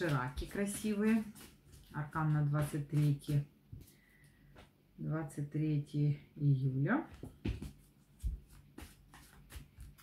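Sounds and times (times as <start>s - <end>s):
cards being shuffled: 0.0s - 4.0s, 7.6s - 10.0s.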